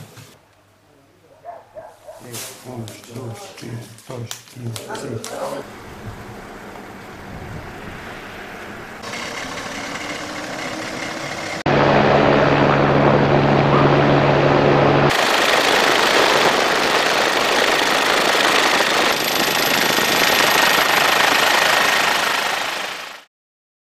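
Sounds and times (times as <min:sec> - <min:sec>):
helicopter rotor chopping: 0:02.4 - 0:23.3
engine noise: 0:05.1 - 0:23.3.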